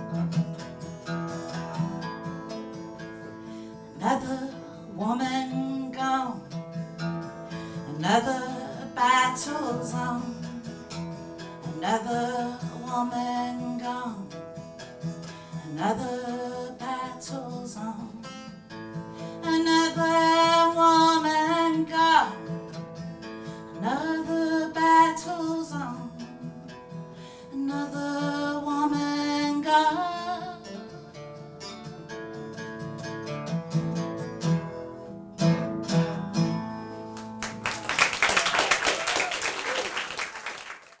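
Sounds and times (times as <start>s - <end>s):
acoustic guitar: 0.0s - 40.4s
woman singing: 3.8s - 6.6s, 7.7s - 14.4s, 15.3s - 18.6s, 19.2s - 22.6s, 23.6s - 31.1s
audience applause: 37.2s - 41.0s.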